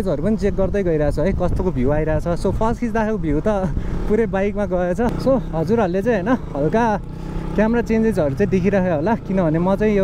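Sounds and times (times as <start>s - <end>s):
man talking: 0.0s - 10.0s
motorcycle engine running: 0.0s - 10.0s.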